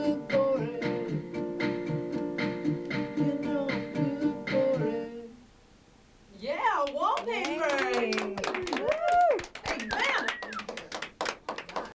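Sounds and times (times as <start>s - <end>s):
hands clapping: 6.8s - 11.9s.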